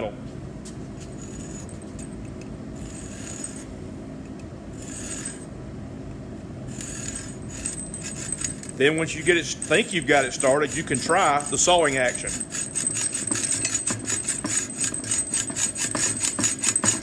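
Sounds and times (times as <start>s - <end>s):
steady low hum: 0.0s - 17.0s
hacksaw scraping metal pipe: 4.8s - 5.4s, 9.4s - 17.0s.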